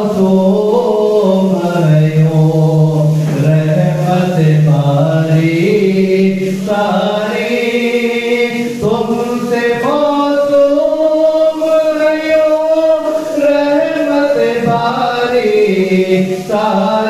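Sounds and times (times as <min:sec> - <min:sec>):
man singing unaccompanied: 0:00.0 - 0:17.0.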